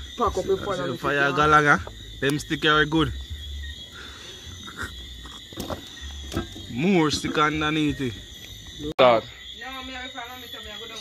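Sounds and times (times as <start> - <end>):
night insects chirring: 0.0 - 11.0.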